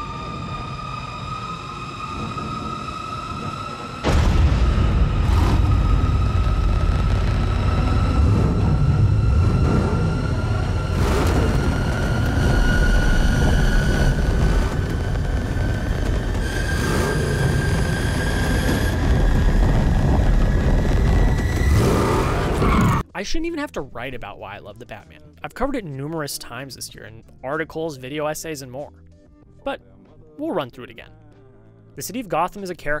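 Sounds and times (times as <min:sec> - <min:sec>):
deep continuous rumble: 0:00.0 - 0:23.0
sustained rising tone: 0:00.0 - 0:23.0
heavy booms: 0:04.0 - 0:23.0.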